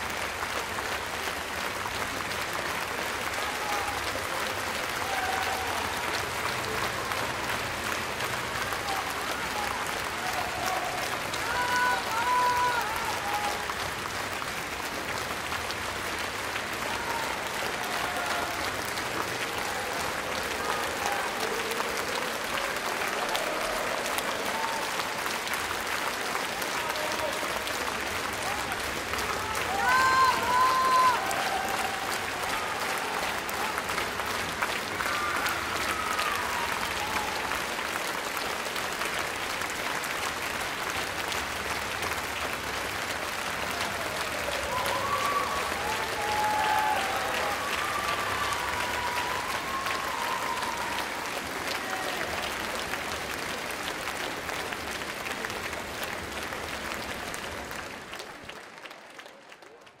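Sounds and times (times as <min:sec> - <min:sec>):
audience applauding: 0:00.0 - 1:00.0.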